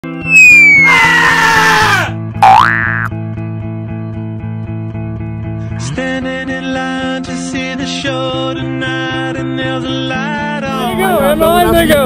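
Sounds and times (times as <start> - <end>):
falling whistle: 0.2 - 1.6
springy upward boing: 0.3 - 0.9, 2.4 - 3.1.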